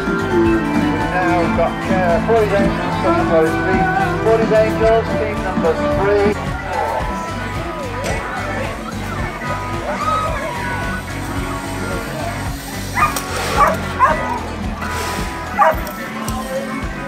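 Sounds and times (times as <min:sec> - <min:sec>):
music with steady beat: 0:00.0 - 0:17.0
dog barking: 0:13.0 - 0:14.4, 0:15.6 - 0:15.9.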